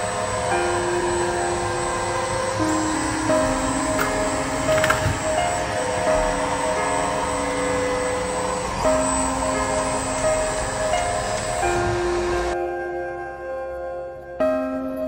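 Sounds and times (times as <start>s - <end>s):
laser engraver whirring: 0.0s - 12.6s
background music with held notes: 0.0s - 15.0s.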